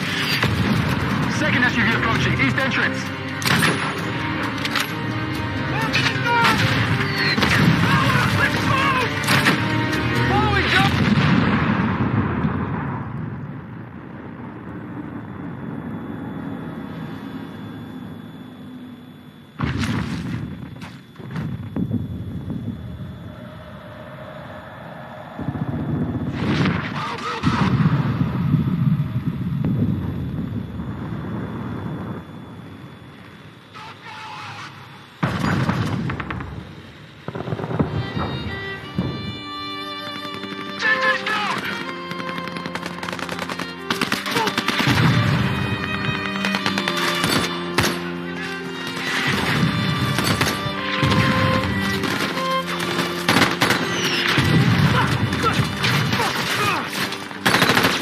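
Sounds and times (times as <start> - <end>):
film music score: 0.0 - 19.6, 35.2 - 58.0
booms: 19.6 - 22.1, 25.4 - 32.3, 35.2 - 39.2, 53.4 - 56.6
gunfire: 40.1 - 48.0, 48.8 - 58.0.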